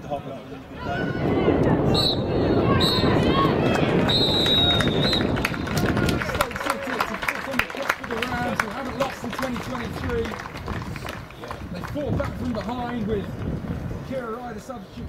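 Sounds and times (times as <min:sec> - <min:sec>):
players' voices: 0:00.0 - 0:15.0
loud rush of noise: 0:00.6 - 0:12.5
referee's whistle long blast: 0:01.9 - 0:03.1, 0:04.1 - 0:05.4
people clapping: 0:03.1 - 0:13.6.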